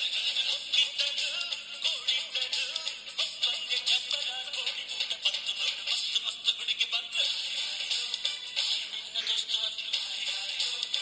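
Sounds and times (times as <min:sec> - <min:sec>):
tinny song on small radio speaker: 0:00.0 - 0:11.0.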